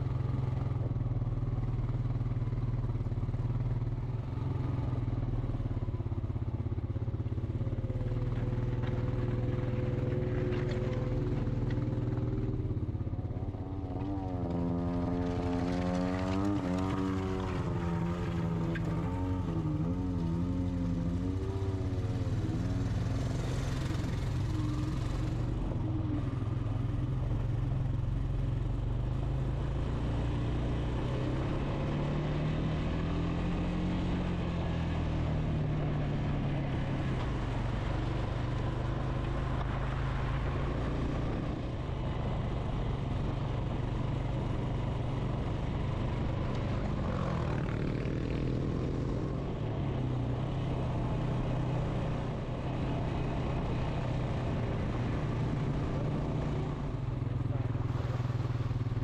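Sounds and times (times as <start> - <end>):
atv engine revving: 13.9 - 25.6.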